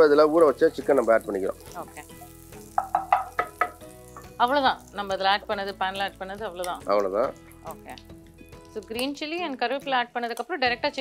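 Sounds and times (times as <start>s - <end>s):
butter sizzling in frying pan: 0.0s - 11.0s.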